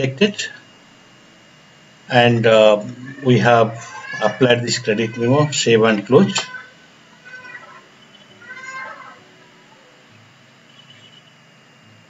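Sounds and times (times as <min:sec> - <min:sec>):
low room hiss: 0:00.0 - 0:12.0
high-pitched animal call: 0:03.0 - 0:10.0, 0:10.7 - 0:11.4.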